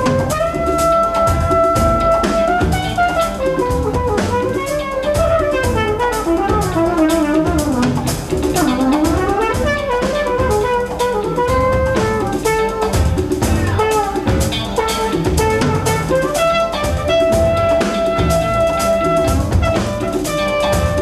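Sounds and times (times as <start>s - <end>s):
drum kit: 0.0s - 21.0s
guitar: 0.0s - 21.0s
trumpet jazz solo: 0.0s - 21.0s.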